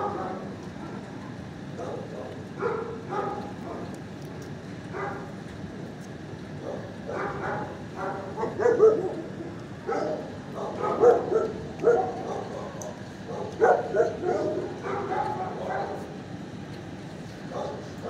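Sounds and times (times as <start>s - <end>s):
dogs barking: 0.0s - 1.1s, 1.7s - 4.0s, 4.9s - 5.3s, 6.6s - 16.2s, 17.5s - 18.0s.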